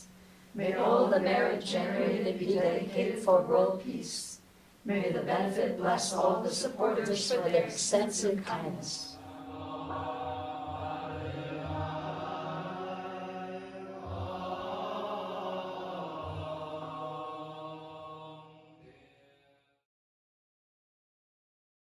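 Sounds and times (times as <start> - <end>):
group chanting sustained notes: 0.0 - 19.8.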